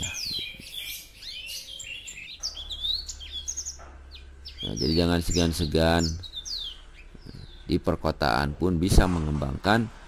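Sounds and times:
small songbirds chirping: 0.0s - 9.8s.

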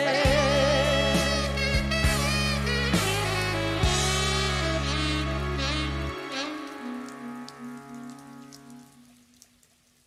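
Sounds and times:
rain hiss and drops: 2.7s - 10.0s.

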